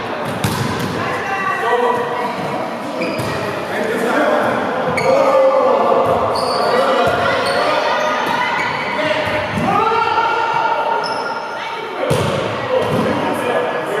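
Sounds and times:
volleyball being struck: 0.3s - 1.0s
sneakers squeaking on hardwood: 3.0s - 3.4s, 4.9s - 5.2s, 6.2s - 9.0s.

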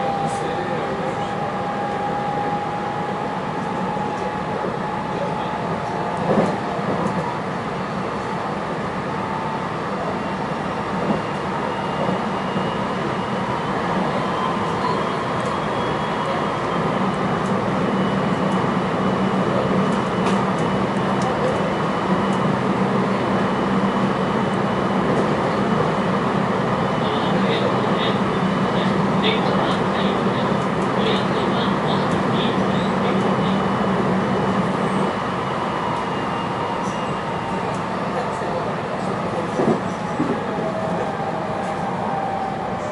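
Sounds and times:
train wheels rumbling on rail: 0.0s - 42.9s.

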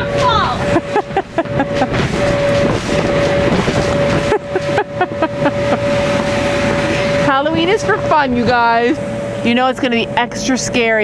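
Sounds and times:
electric blower humming: 0.0s - 11.0s
person laughing: 0.6s - 2.2s, 4.1s - 6.0s.

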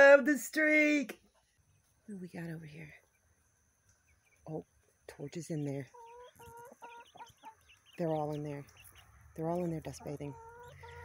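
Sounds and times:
young chickens calling: 1.1s - 11.0s.

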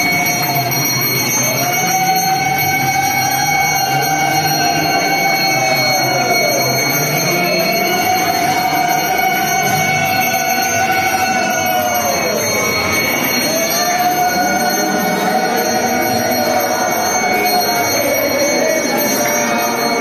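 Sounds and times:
hand bell ringing: 0.0s - 20.0s.

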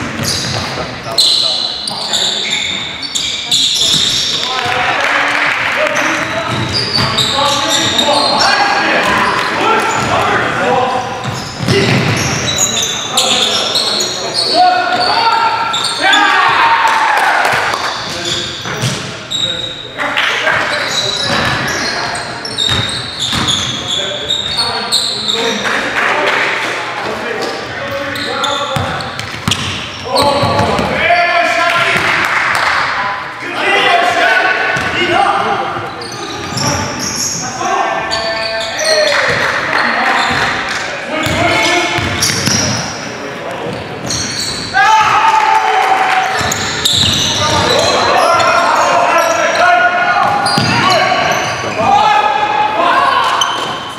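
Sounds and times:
players calling out: 0.0s - 53.9s.

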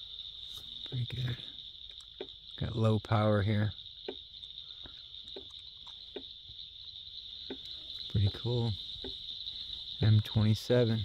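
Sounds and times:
crickets chirring: 0.0s - 11.0s.

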